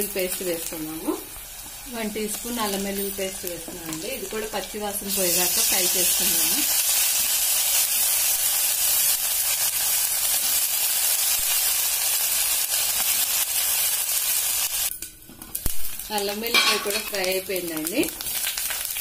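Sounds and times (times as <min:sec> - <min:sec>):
food sizzling in hot oil: 0:00.0 - 0:19.0.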